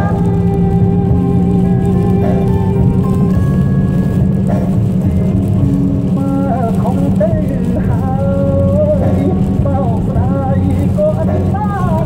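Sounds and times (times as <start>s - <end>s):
car road and tyre noise: 0.0s - 12.0s.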